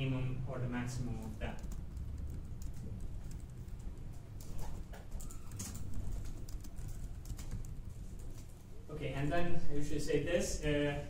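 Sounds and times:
low room rumble: 0.0s - 11.0s
typing on laptop keyboard: 1.0s - 8.7s.

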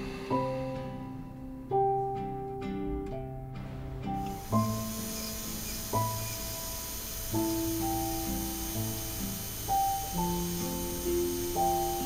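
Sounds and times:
soft slow keyboard chords: 0.0s - 12.0s.

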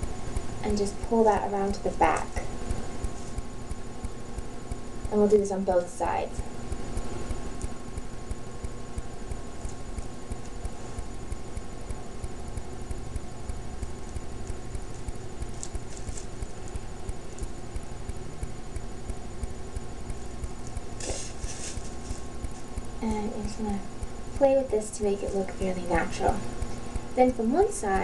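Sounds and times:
low pulsing background noise: 0.0s - 28.0s
thin steady whine: 0.0s - 28.0s.

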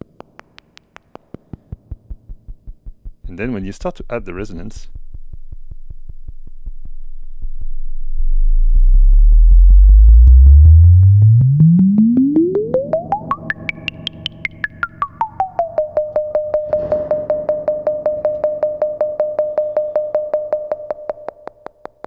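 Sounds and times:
resonant synthesizer filter pings: 7.7s - 22.0s.

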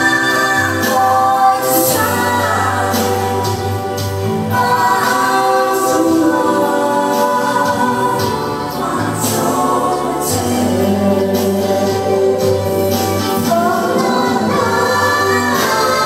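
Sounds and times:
instrumental backing: 0.0s - 16.0s
voices singing slow melody: 0.0s - 16.0s.

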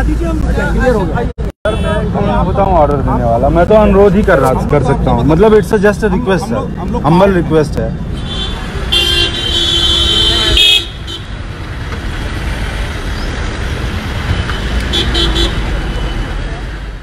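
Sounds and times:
street traffic rumble: 0.0s - 17.0s
car horn blasts and toots: 8.2s - 11.3s.

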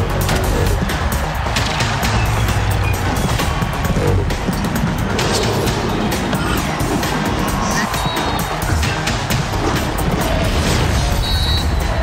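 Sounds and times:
theme music with heavy bass: 0.0s - 12.0s.

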